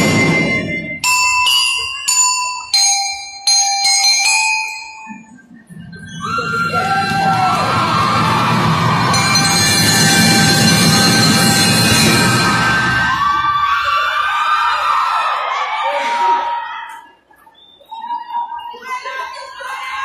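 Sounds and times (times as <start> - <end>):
glockenspiel notes: 0.0 - 5.5, 9.1 - 12.8
band playing: 7.2 - 13.3.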